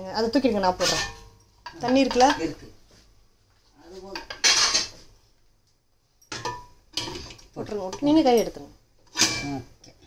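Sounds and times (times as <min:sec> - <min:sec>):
metal pots and utensils clattering: 0:00.4 - 0:02.7, 0:04.1 - 0:05.0, 0:06.2 - 0:10.0.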